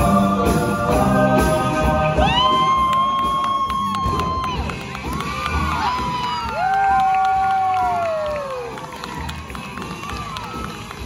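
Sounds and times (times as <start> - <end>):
audience cheering: 2.2 - 11.0
people clapping: 2.2 - 11.0.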